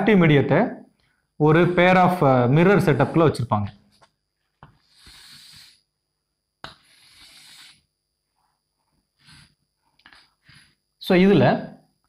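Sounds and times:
chalk stroke on chalkboard: 4.8 - 5.8, 6.9 - 7.8.

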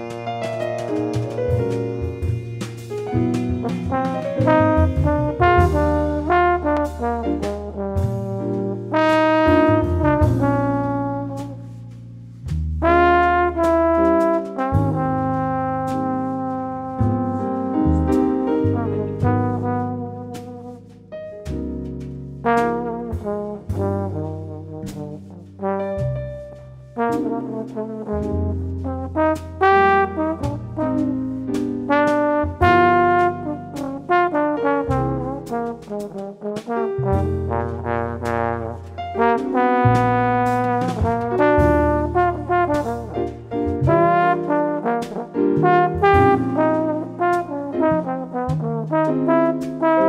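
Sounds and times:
trombone solo: 0.0 - 21.4, 22.4 - 50.0
low sustained bass notes: 0.0 - 49.9.

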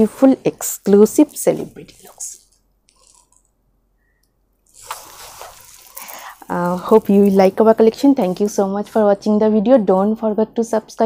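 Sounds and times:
fabric rustling: 0.8 - 3.5, 4.6 - 9.1.

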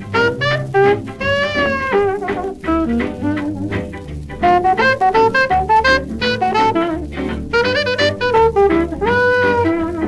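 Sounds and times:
jazz band rhythm section: 0.0 - 10.0
jazz horn sliding notes: 0.0 - 10.0.

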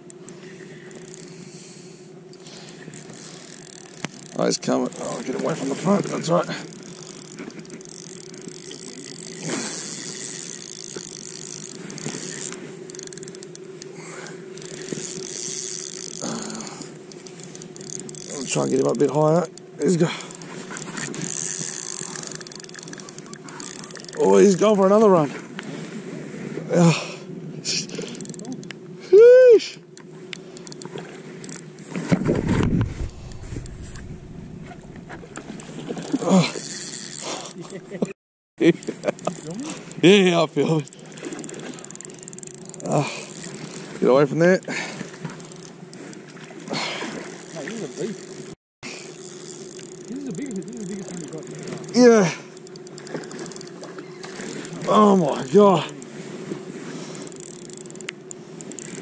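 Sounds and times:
steady hum: 0.0 - 25.7, 27.3 - 37.9
fishing reel drag clicking: 0.0 - 25.9, 27.7 - 28.9, 29.6 - 32.2, 32.8 - 59.0.

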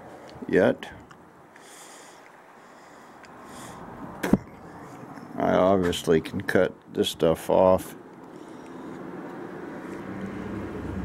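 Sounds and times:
soft breaths or sniffs: 1.5 - 5.3, 8.2 - 10.1.

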